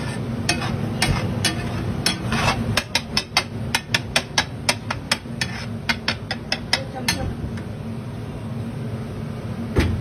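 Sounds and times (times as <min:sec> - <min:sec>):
metal spatula clanking on griddle: 0:00.0 - 0:07.3
steady low hum: 0:00.0 - 0:10.0.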